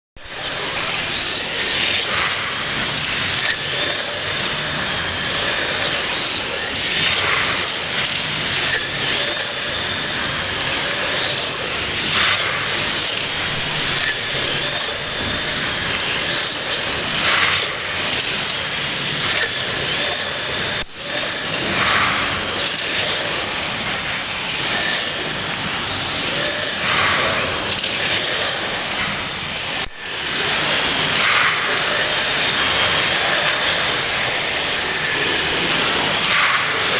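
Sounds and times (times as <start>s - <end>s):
slot car motors whining: 0.2s - 36.9s.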